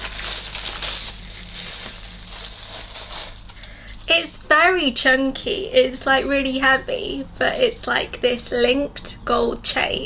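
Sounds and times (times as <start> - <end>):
metal chain clinking: 0.0 - 8.2.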